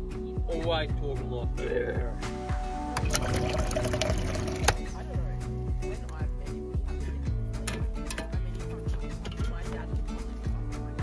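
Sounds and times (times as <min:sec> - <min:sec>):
background music with beat: 0:00.0 - 0:11.0
tap water filling a pot: 0:03.0 - 0:04.9.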